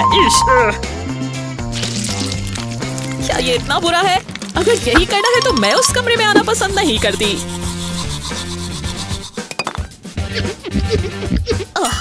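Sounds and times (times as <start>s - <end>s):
background music: 0.0s - 12.0s
toothbrush scrubbing teeth: 1.8s - 9.4s.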